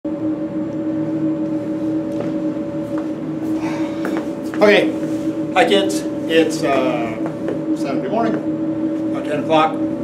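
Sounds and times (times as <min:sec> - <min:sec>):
ventilation fan humming: 0:00.1 - 0:10.0.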